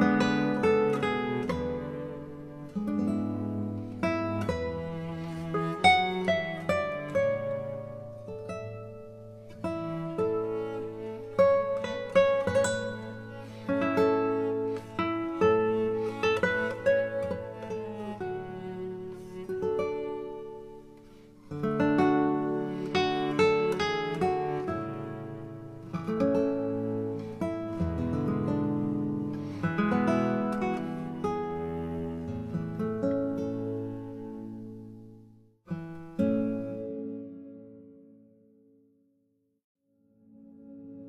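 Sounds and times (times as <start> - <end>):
plucked instrumental music: 0.0 - 38.2.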